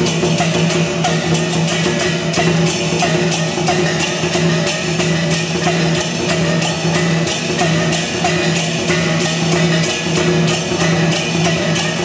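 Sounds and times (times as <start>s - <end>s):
cymbal crashes: 0.0s - 12.0s
drum beats: 0.0s - 12.0s.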